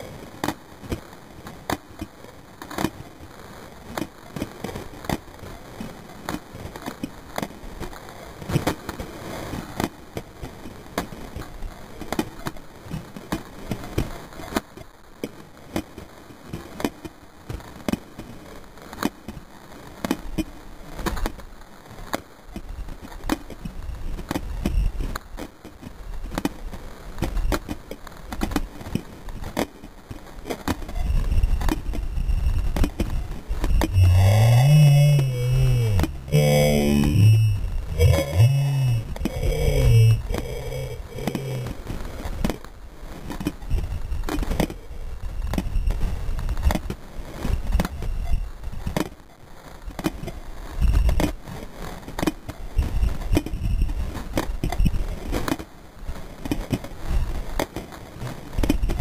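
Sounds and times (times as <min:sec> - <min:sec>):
low rumble: 0:33.2 - 0:41.9.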